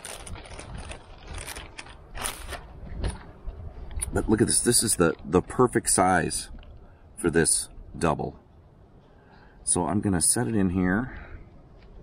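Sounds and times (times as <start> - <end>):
plastic wrapper crinkling: 0.0 - 3.2.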